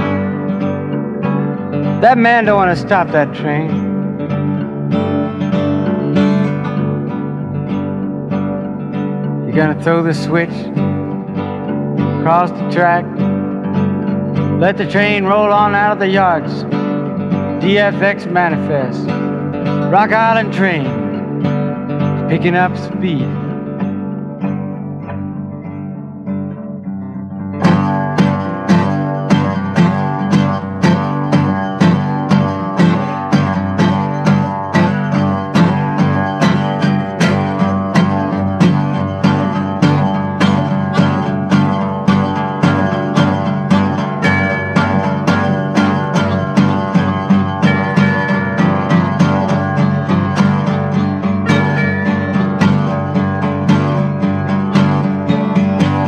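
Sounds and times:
acoustic guitar strumming: 0.0s - 56.0s.

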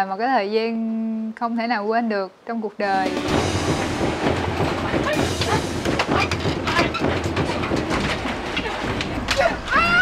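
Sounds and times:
clattering on bamboo floorboards: 3.2s - 9.8s
people shouting: 8.6s - 10.0s.

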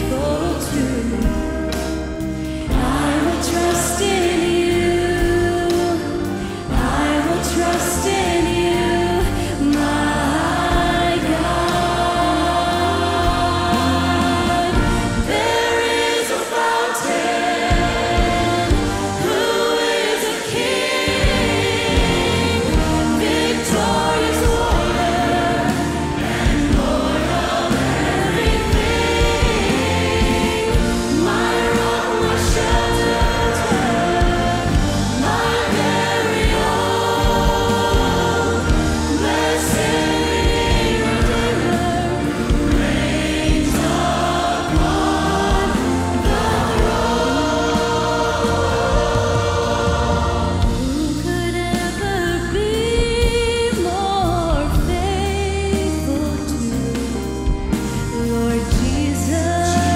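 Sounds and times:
electric guitar: 0.0s - 16.7s, 17.4s - 59.9s
choir singing: 0.0s - 59.9s
keyboard: 0.0s - 59.9s
lead singers: 0.0s - 59.9s.

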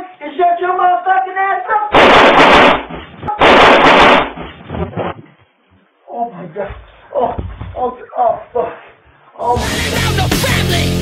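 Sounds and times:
rifle gunfire bursts: 1.9s - 4.4s.

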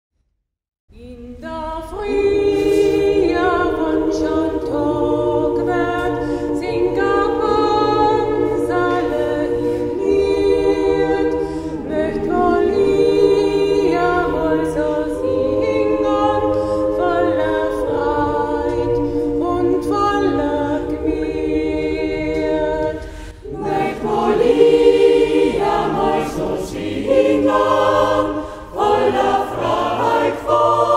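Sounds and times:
mixed choir singing a cappella: 1.3s - 30.9s.

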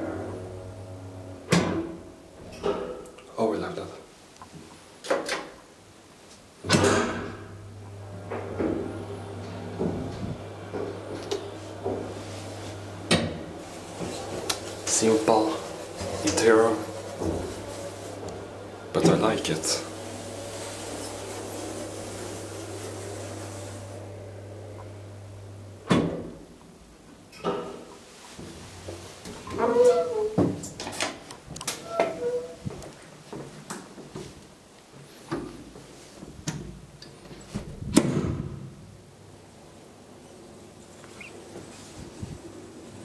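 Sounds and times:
elevator stopping clunk: 0.0s - 3.0s, 6.8s - 15.0s, 15.6s - 26.2s
elevator humming: 0.0s - 3.1s, 7.0s - 26.6s
door squeaking: 29.4s - 30.5s, 31.7s - 32.7s.

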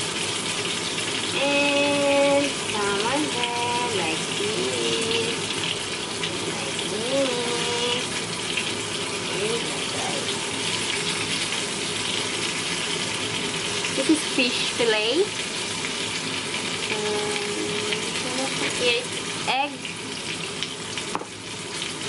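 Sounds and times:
fish frying in oil: 0.0s - 22.0s.

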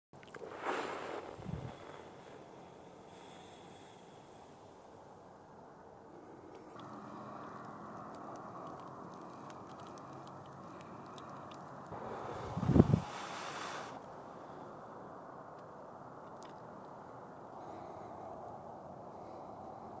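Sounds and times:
outdoor background noise: 0.2s - 20.0s
small clicks: 6.4s - 12.0s, 15.5s - 17.0s.

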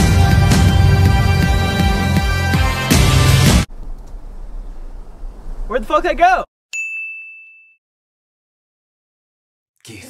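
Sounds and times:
high metallic ding: 6.7s - 7.8s.

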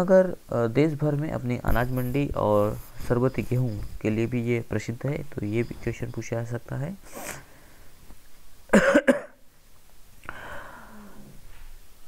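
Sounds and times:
person coughing: 8.7s - 9.4s.

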